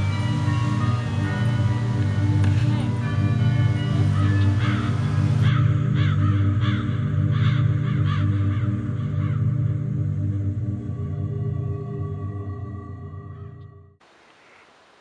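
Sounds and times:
background music drone: 0.0 - 14.0
bird giving harsh calls: 2.8 - 9.5.

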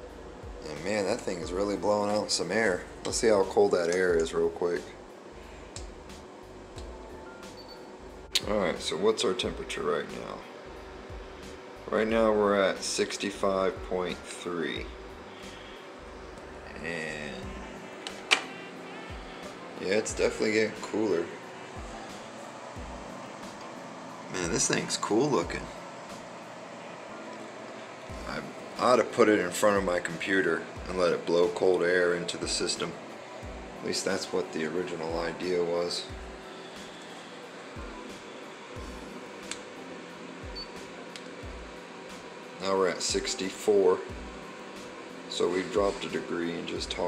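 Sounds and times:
air cooler fan airflow: 0.0 - 47.0.

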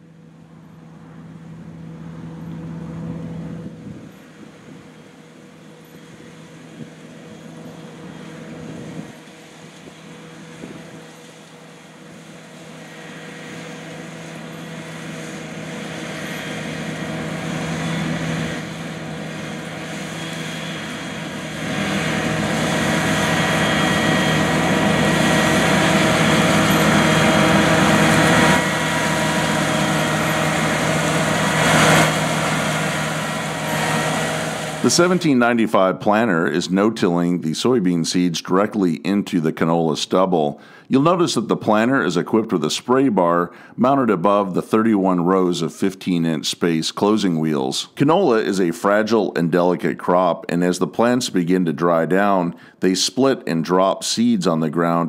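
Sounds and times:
tractor diesel engine running: 0.0 - 55.0.

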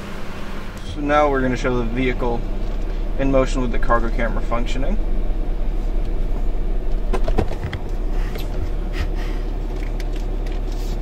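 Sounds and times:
truck engine and road rumble: 0.0 - 11.0.

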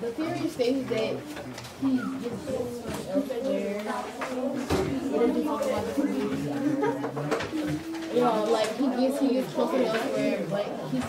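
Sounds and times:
students talking: 0.0 - 11.0.

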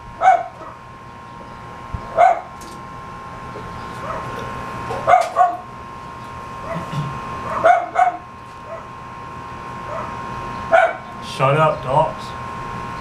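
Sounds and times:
dogs barking: 0.2 - 0.9, 2.1 - 2.6, 4.0 - 5.7, 6.6 - 9.0, 9.8 - 11.2.

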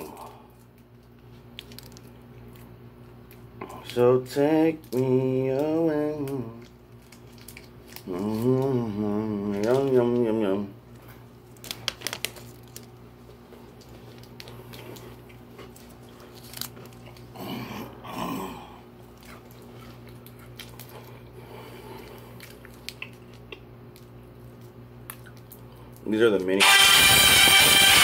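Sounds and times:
muffled voice hum: 0.0 - 0.6, 8.0 - 10.8
chewing candy bar: 0.0 - 13.0, 13.6 - 26.5.

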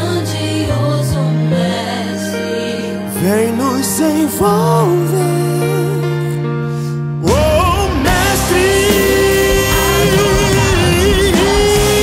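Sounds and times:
man singing gospel song: 3.2 - 6.2, 7.2 - 12.0
band accompaniment: 7.2 - 12.0.

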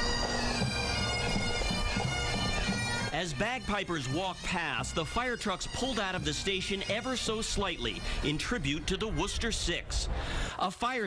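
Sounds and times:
bagpipes playing: 0.0 - 10.6.

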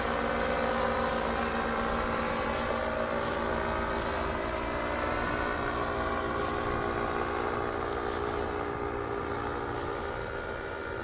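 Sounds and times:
paramotor engine and propeller droning: 0.0 - 11.0.

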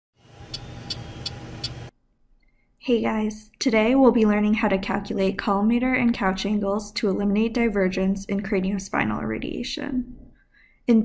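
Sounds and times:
ticks: 0.5 - 1.9.

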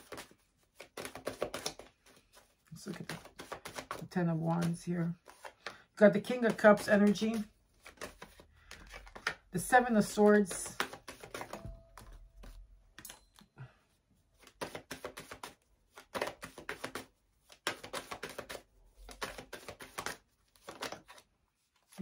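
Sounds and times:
cards being shuffled: 0.0 - 12.6, 14.4 - 22.0.

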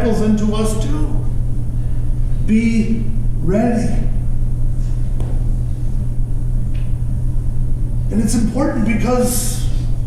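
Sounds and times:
low hum with rumble: 0.0 - 10.0.

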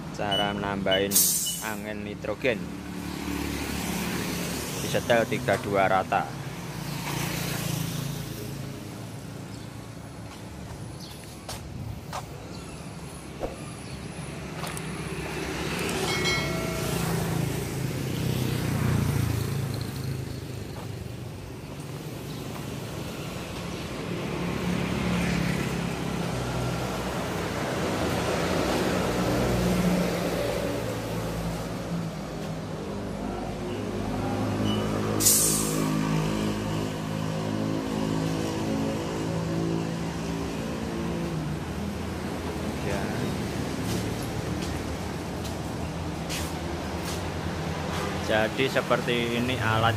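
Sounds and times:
vehicle engines running: 7.0 - 49.9
compressed air hiss: 35.2 - 35.8.

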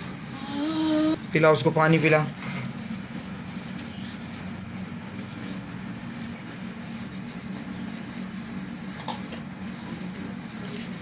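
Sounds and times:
constant hum: 0.0 - 11.0.

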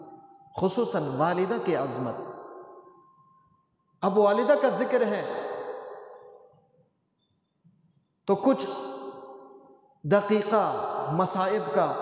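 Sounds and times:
man speaking: 4.0 - 5.4.

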